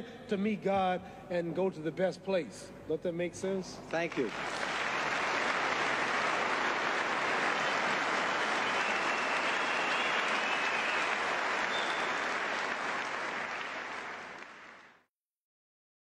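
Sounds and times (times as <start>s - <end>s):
audience applauding: 4.0s - 15.0s.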